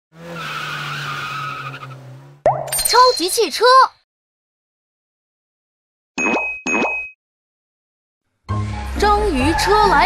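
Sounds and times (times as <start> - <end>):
cartoon race car engine: 0.1 - 2.4
tyre skid squealing: 0.2 - 2.4.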